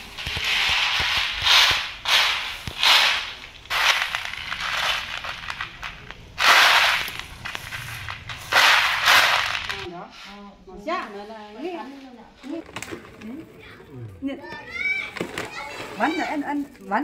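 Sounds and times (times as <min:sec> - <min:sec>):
dried beans rattling in a tray: 0:00.0 - 0:09.9.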